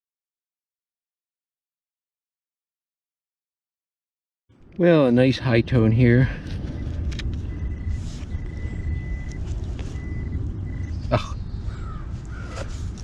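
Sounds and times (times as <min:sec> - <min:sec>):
low rumble: 0:04.5 - 0:13.0
metal detector high tone: 0:06.8 - 0:11.1.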